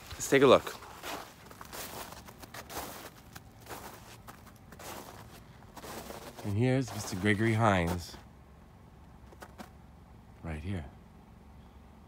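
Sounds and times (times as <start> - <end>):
footsteps on thin snow: 0.0 - 8.3.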